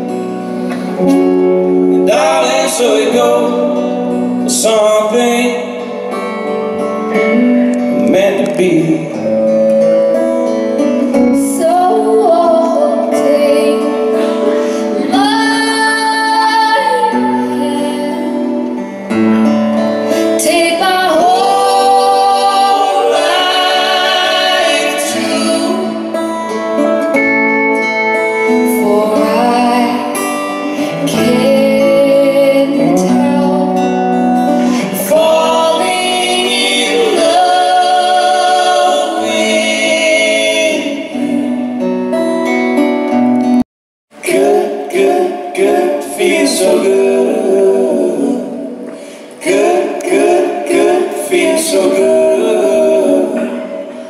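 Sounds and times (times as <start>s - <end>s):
acoustic guitars: 0.0s - 54.0s
woman singing: 11.3s - 18.7s, 20.2s - 26.2s, 28.4s - 41.7s.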